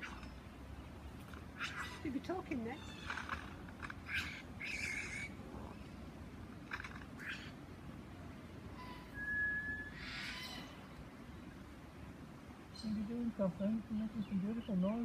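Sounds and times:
lyrebird mimicked calls: 0:01.6 - 0:05.8, 0:06.6 - 0:07.6, 0:08.8 - 0:10.9
clear single-pitch whistle: 0:09.0 - 0:10.0.

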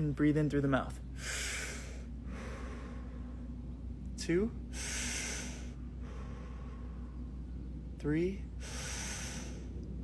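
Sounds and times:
man inhaling deeply: 0:01.2 - 0:03.5, 0:04.7 - 0:07.2, 0:08.6 - 0:09.8.

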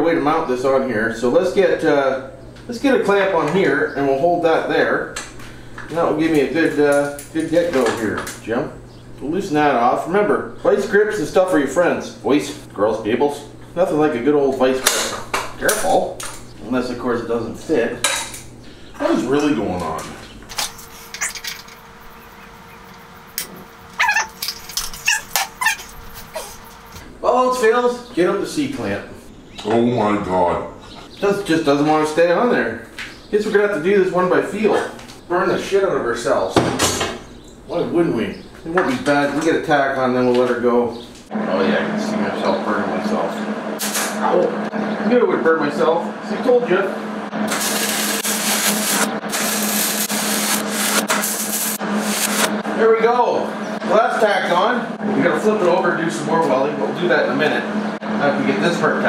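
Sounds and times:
steady low hum: 0:00.0 - 0:59.0
metallic clinks and squeaks: 0:20.8 - 0:22.5, 0:23.9 - 0:26.6
welding arc crackling: 0:47.3 - 0:52.6.

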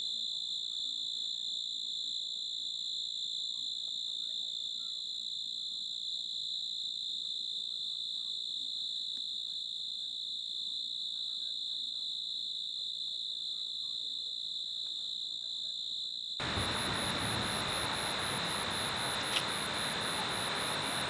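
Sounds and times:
crickets trilling: 0:16.4 - 0:21.0.

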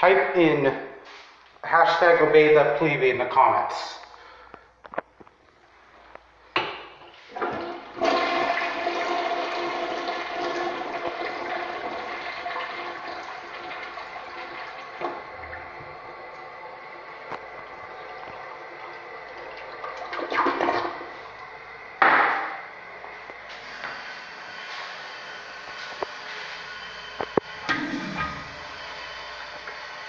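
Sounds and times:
toilet flushing: 0:06.9 - 0:30.0
water hissing as bowl refills: 0:07.2 - 0:30.0.

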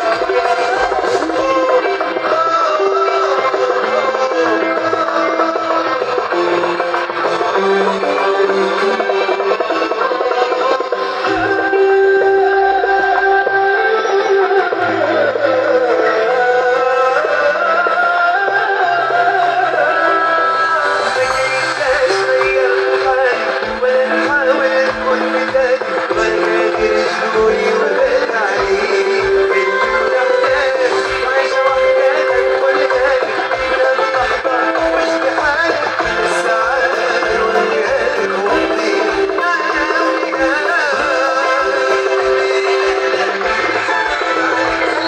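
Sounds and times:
bass guitar: 0:00.0 - 0:45.0
keyboard: 0:00.0 - 0:45.0
live band music: 0:00.0 - 0:45.0
man singing into microphone: 0:00.0 - 0:45.0.

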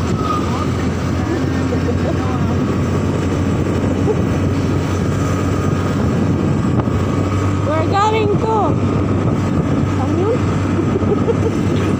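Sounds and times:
motorcycle engine running: 0:00.0 - 0:11.9
wind and road noise: 0:00.0 - 0:11.9.

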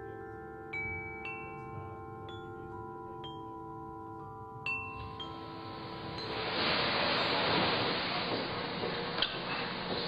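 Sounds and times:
chime-like ringing tones: 0:00.0 - 0:07.9
steady hiss: 0:01.2 - 0:10.0.

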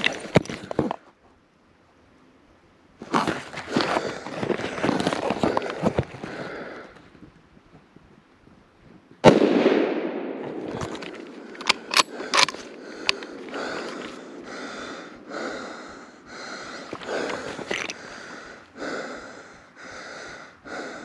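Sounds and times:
rifle shot echoing: 0:09.2 - 0:10.6.

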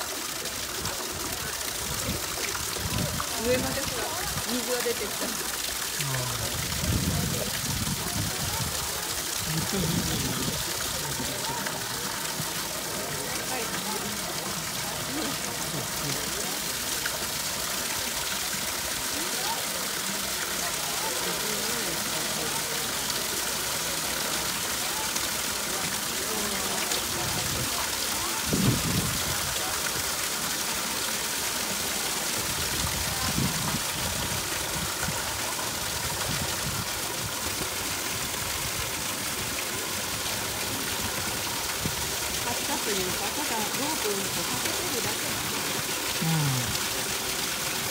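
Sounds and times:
water rushing through sluices: 0:00.0 - 0:47.9
people talking: 0:00.1 - 0:16.8, 0:19.0 - 0:36.2, 0:42.3 - 0:47.0.

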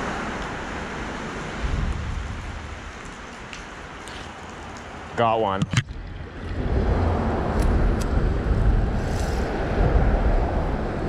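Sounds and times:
wind rumble on microphone: 0:00.0 - 0:04.0, 0:05.6 - 0:11.0.

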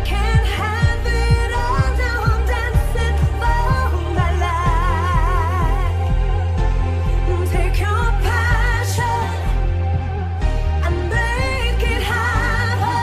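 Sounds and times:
person singing with vibrato: 0:00.0 - 0:13.0
pulsing synth bass: 0:00.0 - 0:13.0.

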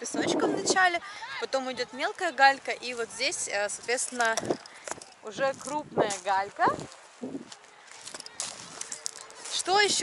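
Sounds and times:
footsteps crunching on pebbles: 0:03.8 - 0:10.0.

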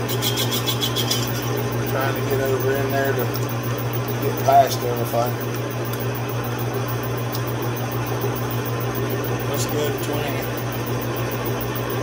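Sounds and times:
lathe tool cutting metal: 0:00.0 - 0:03.4
metal lathe motor hum: 0:00.0 - 0:12.0.

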